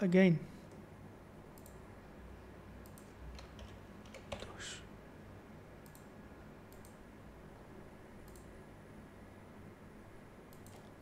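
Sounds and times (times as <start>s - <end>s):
keyboard keystrokes: 2.8s - 4.6s, 10.5s - 10.9s.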